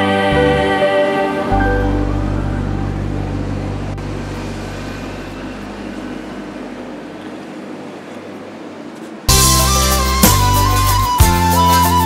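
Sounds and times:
low held music chord: 0.0s - 7.2s.

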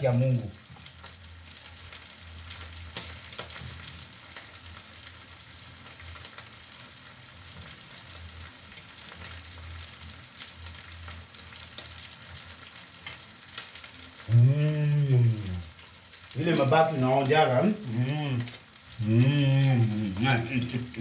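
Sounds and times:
meat sizzling in a frying pan: 0.0s - 21.0s.

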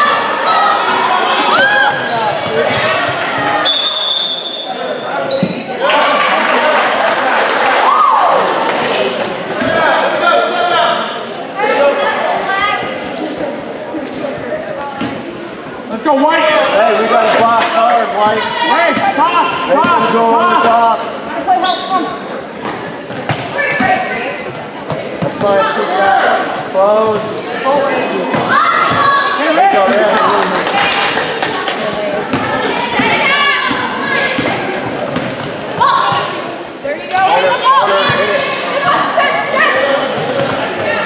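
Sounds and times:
sneakers squeaking: 0.6s - 5.8s, 10.7s - 11.4s, 18.2s - 41.0s.

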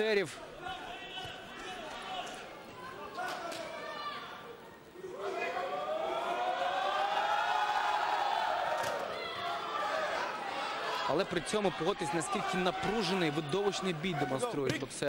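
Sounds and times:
crowd shouting: 0.4s - 14.7s.

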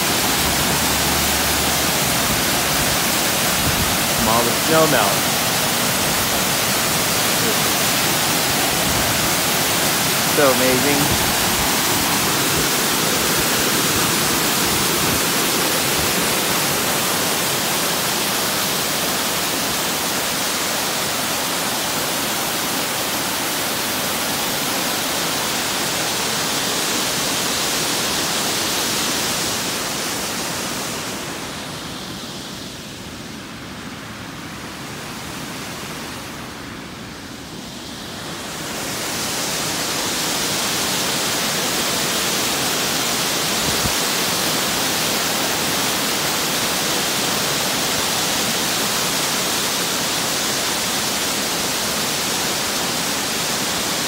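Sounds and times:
waterfall rushing: 0.0s - 54.0s.

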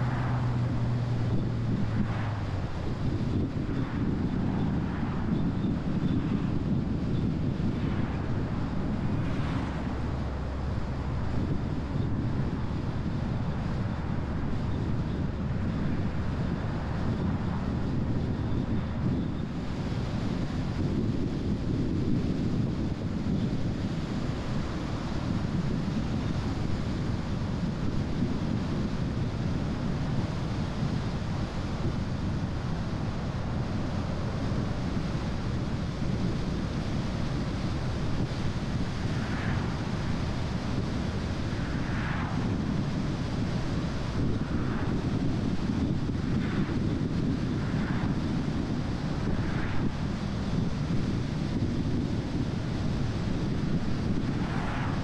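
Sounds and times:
tyre and wind road noise: 0.0s - 55.0s
wind buffeting microphone: 0.0s - 55.0s.

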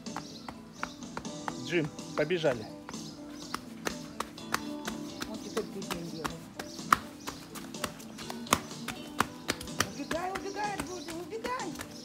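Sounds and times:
running footsteps on hard surface: 0.0s - 12.0s.

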